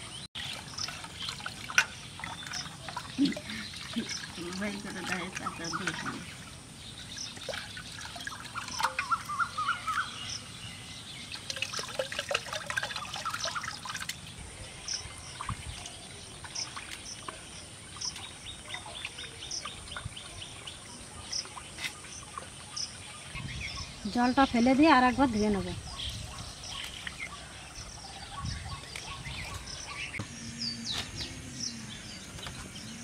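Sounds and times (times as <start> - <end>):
birds chirping: 0.0 - 33.0
water pouring into metal pot: 0.4 - 6.4, 7.4 - 9.3, 11.3 - 14.2.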